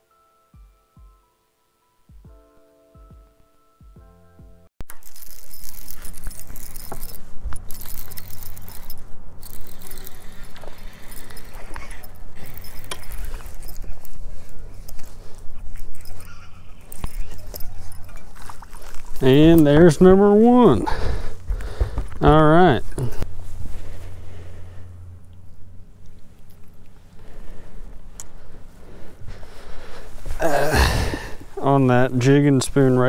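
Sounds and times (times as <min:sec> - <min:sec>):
music with mallet tones: 0:00.0 - 0:04.7
fishing reel clicks and rattles: 0:04.8 - 0:14.2
rustling and handling noise: 0:04.8 - 0:33.0.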